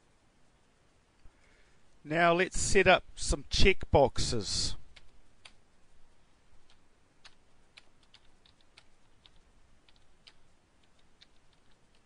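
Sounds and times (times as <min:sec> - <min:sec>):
computer keyboard keystrokes: 0:04.9 - 0:05.6, 0:06.6 - 0:12.0.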